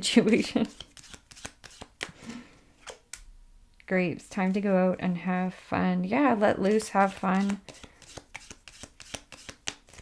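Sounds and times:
cards being shuffled: 0.2 - 2.2, 6.6 - 10.0.

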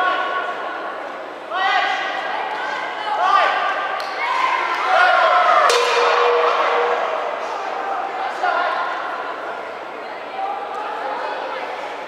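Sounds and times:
people shouting: 4.2 - 8.6
sharp strike: 5.7 - 7.7.

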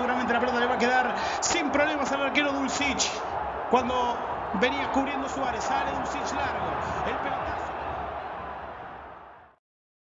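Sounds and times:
stadium crowd murmur: 0.0 - 9.5.

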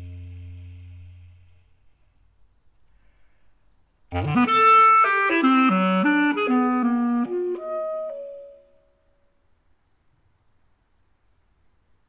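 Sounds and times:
basset horn playing: 0.0 - 1.5, 4.1 - 8.7.

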